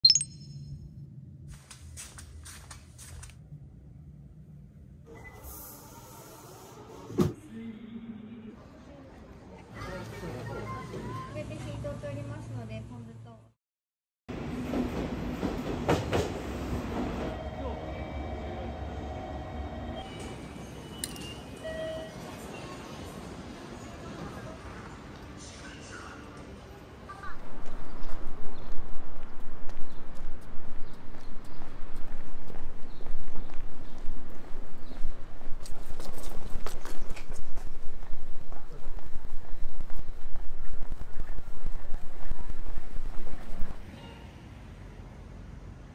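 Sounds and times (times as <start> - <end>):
subway train rumbling: 14.3 - 35.9, 37.2 - 45.9
train clanks: 14.4 - 17.3
footsteps on pavement: 27.4 - 43.8.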